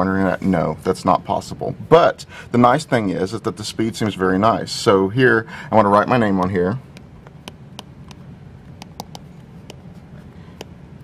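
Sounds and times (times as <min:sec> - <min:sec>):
faint room noise: 0:00.0 - 0:11.0
stylus tapping on glass screen: 0:06.9 - 0:08.2, 0:08.8 - 0:09.8.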